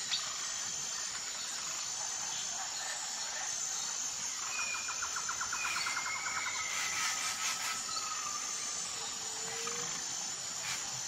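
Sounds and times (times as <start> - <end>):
birds singing: 0.0 - 10.9
high insect drone: 0.0 - 11.0.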